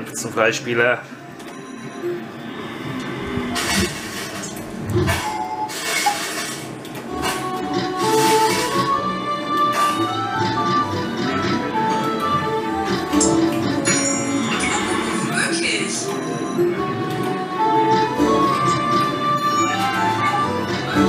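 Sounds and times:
slot machine music: 1.2 - 21.0
clinking sound effects: 13.2 - 14.8.

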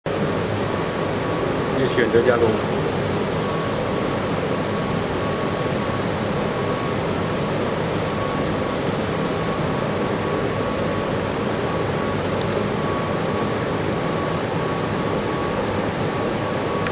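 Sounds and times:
laser machine whooshing hum: 1.8 - 9.7
thin high hiss: 2.3 - 9.6.

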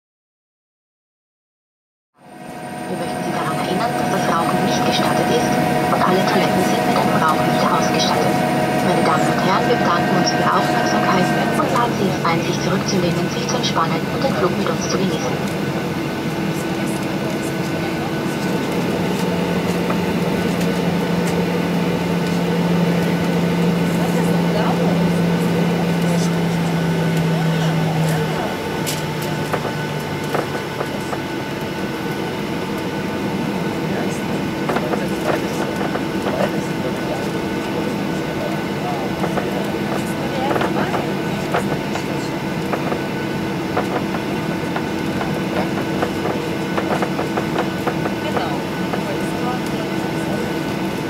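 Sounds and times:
low steady tone: 2.2 - 16.0
higher steady tone: 2.2 - 34.6
aircraft engines idling hum: 2.2 - 51.0.

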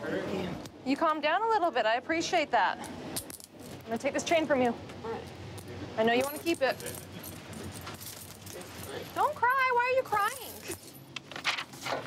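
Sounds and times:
metal chains clinking: 2.8 - 4.1, 5.2 - 11.1.

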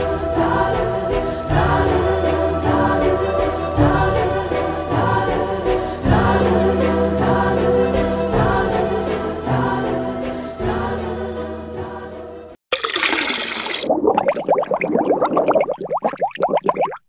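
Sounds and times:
music with choral singing: 0.0 - 12.6
rising bubbling pops: 12.7 - 17.0.

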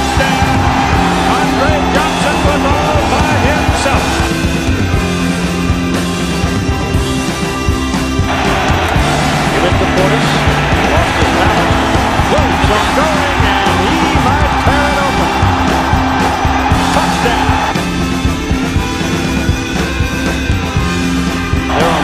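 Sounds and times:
crowd roaring: 0.0 - 22.0
rock music: 0.0 - 22.0.

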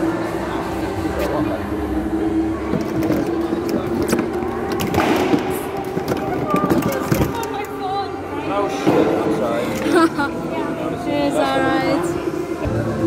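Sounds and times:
indistinct voices: 0.0 - 13.0.

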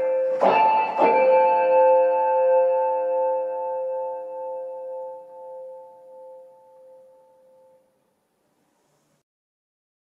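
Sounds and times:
electronic keyboard chord: 0.0 - 8.0.

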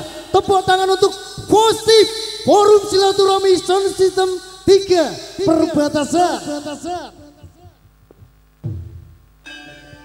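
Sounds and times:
echoing processed voice-over: 0.0 - 7.8
steady low hum: 0.0 - 10.0.

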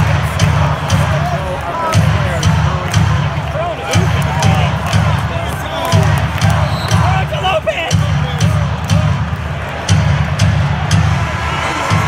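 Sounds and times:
arena crowd noise: 0.0 - 12.0
low pulsing arena music: 0.0 - 12.0.

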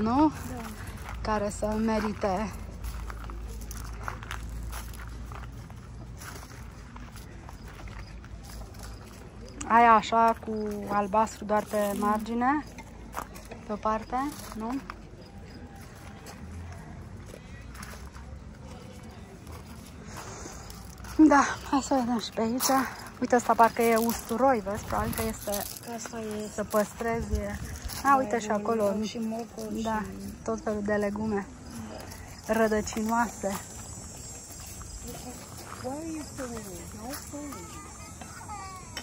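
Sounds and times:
people talking: 0.0 - 2.7, 9.6 - 15.0, 17.3 - 39.0
distant voices: 0.0 - 39.0.

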